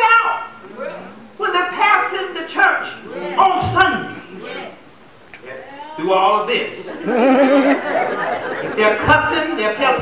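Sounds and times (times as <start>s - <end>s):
faint wavering congregation voices: 0.0s - 10.0s.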